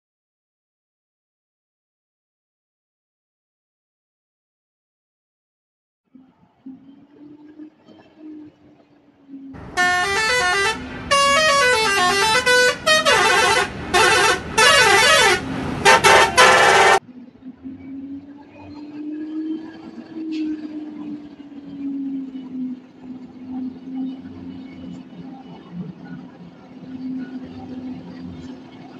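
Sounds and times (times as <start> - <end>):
truck engine hum: 6.3 - 28.9
musical truck horn playing a tune: 9.6 - 17.0.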